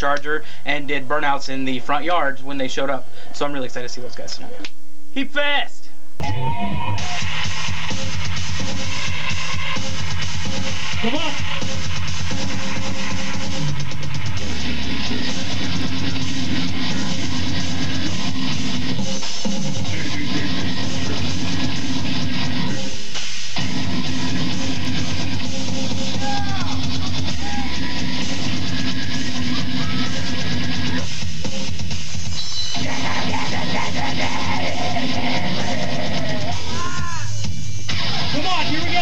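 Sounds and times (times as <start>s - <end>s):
heavy metal band playing live: 19.7s - 22.8s, 23.6s - 37.4s.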